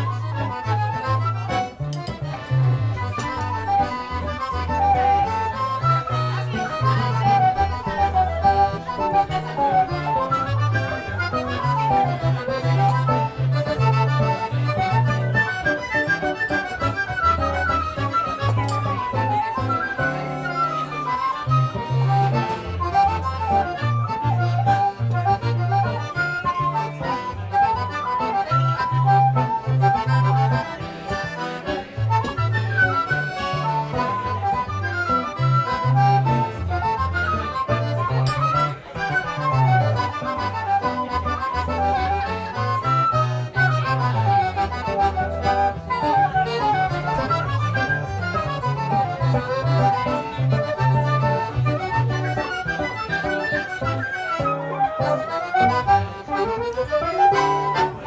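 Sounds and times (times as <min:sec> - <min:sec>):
flute accordion and guitar trio: 0:00.0 - 0:58.0.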